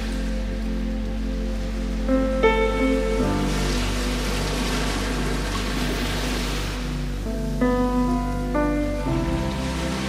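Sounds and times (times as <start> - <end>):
low steady drone: 0.0 - 10.0
rushing water: 0.0 - 10.0
soft background music: 0.0 - 10.0.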